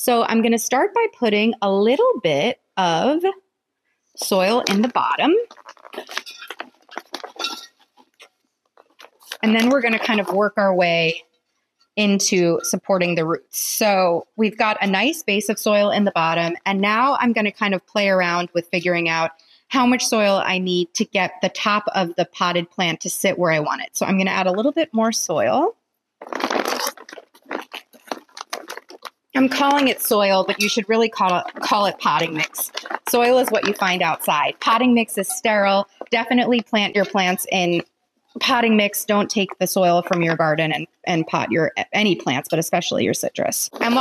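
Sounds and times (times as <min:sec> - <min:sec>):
potting soil pouring into a pot: 0:26.2 - 0:37.8.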